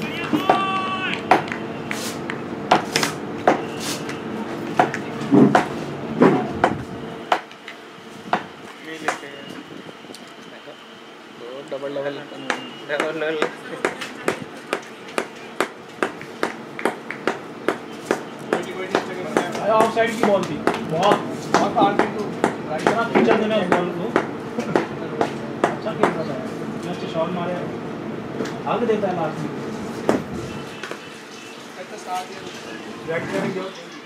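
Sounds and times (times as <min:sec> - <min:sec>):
people talking: 0:00.0 - 0:01.6, 0:08.7 - 0:15.7, 0:18.4 - 0:27.8, 0:31.7 - 0:34.0.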